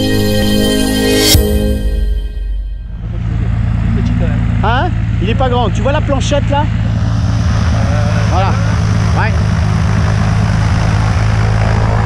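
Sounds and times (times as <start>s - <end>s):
propeller plane engine idling: 2.8s - 12.0s.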